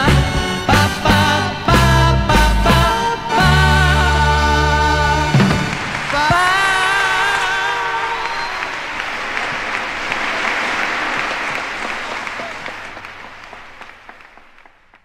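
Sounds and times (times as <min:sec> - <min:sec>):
audience applauding: 0:05.2 - 0:15.0.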